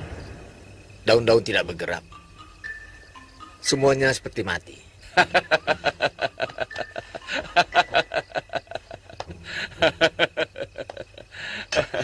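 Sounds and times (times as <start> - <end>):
man laughing: 5.0 - 12.0.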